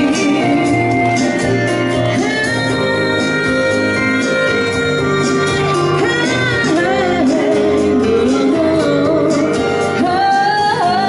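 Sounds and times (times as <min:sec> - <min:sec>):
backing music: 0:00.0 - 0:11.0
woman singing pop song: 0:00.0 - 0:11.0.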